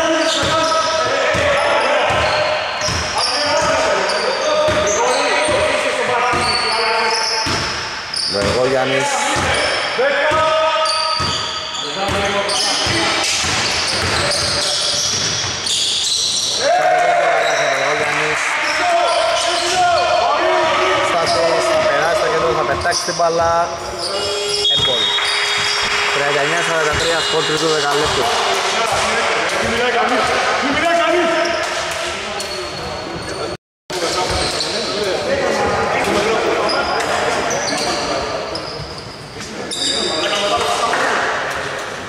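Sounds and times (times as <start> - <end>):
basketball dribbling in hall: 0.0 - 16.6, 24.2 - 36.4
sneakers squeaking on floor: 0.0 - 16.7, 17.3 - 18.0, 18.6 - 42.0
players calling out: 0.0 - 33.5.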